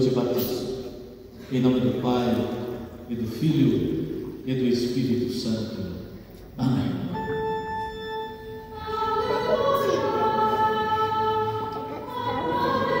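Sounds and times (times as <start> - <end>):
choir singing long held notes: 6.6 - 13.0.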